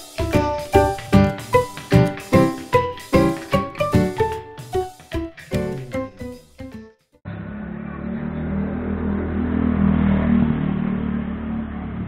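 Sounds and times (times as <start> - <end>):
vehicle engine humming: 7.3 - 12.0.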